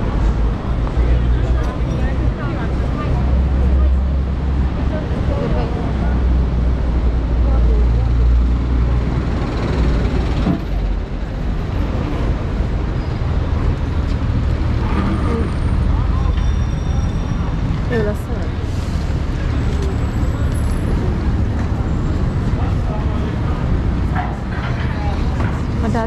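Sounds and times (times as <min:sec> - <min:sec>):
traffic rumble: 0:00.0 - 0:26.0
voices of passersby: 0:00.0 - 0:26.0
wind: 0:00.0 - 0:26.0.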